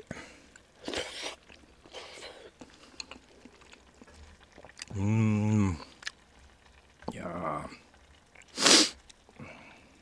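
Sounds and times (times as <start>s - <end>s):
faint breath: 9.4s - 10.0s.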